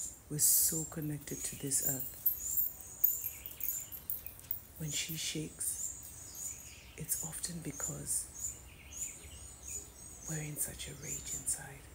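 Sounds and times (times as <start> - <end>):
birds chirping: 0.4 - 11.9.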